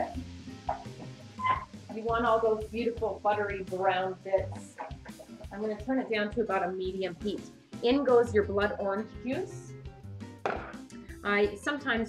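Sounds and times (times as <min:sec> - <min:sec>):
wine sizzling in a frying pan: 0:00.0 - 0:07.8
light background music: 0:00.0 - 0:12.0.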